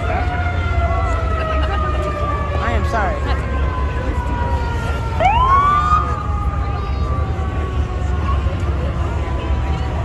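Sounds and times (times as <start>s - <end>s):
emergency vehicle siren: 0.0s - 10.0s.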